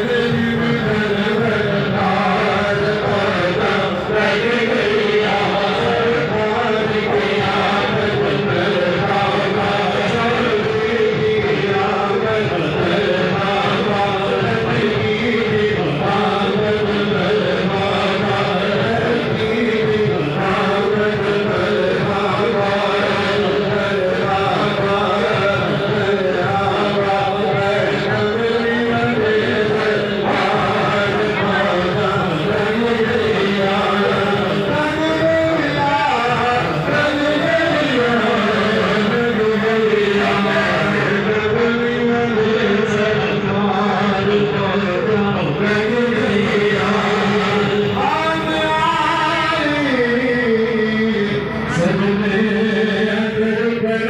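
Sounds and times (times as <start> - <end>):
men chanting together: 0.0 - 54.0.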